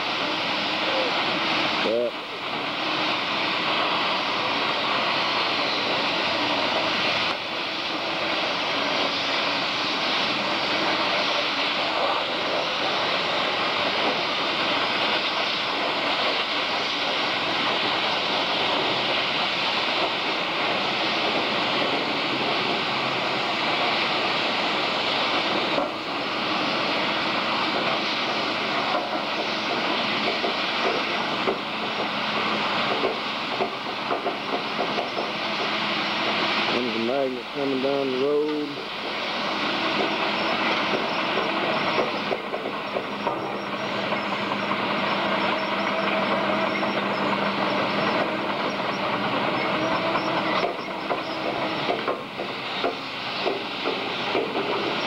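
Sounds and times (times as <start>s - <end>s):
loud rushing hiss: 0.0s - 55.0s.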